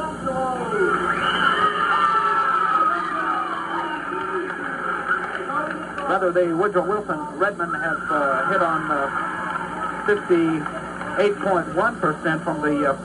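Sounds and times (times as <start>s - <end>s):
crowd talking and calling out: 0.4s - 6.4s, 7.0s - 11.8s.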